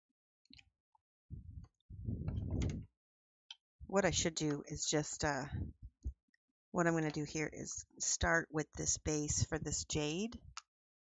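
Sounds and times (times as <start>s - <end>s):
person speaking: 1.4s - 2.8s, 3.9s - 6.1s, 6.8s - 10.6s.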